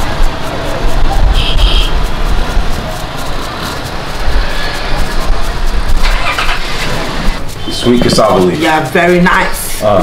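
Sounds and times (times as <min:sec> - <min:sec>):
street noise with low rumble: 0:00.0 - 0:10.0.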